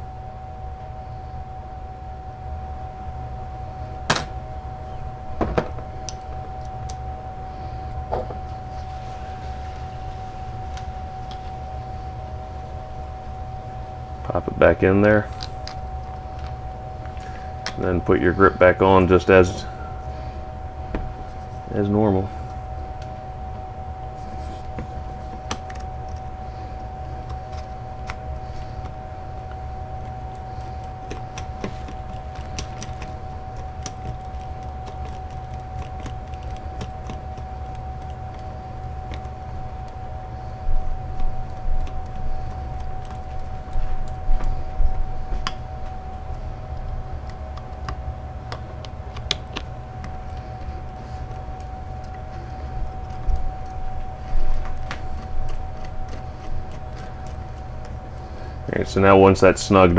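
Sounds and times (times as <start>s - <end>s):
steady hum: 0.0s - 59.9s.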